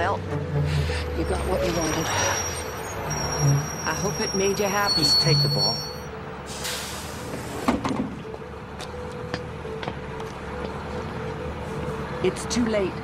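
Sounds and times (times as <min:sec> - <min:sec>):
bus engine idling: 0:00.0 - 0:09.7.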